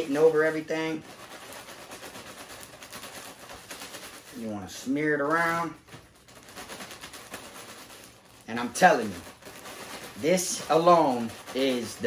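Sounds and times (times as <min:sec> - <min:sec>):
plastic bag of chips crinkling: 0:00.0 - 0:12.0.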